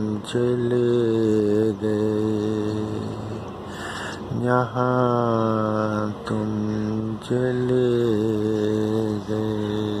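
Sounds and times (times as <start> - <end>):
man singing low held notes: 0.0 - 3.5, 4.1 - 10.0.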